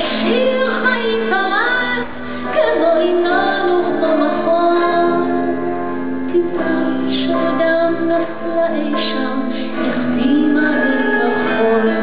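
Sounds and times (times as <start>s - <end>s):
live band playing: 0.0s - 12.0s
woman singing into a microphone: 0.0s - 12.0s.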